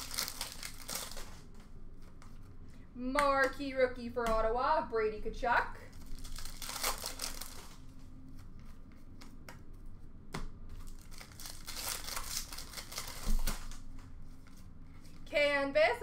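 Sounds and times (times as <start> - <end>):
wrappers crinkling and tearing: 0.0 - 1.6, 5.8 - 8.0, 10.8 - 15.2
cards being handled: 0.0 - 2.6, 5.9 - 15.2.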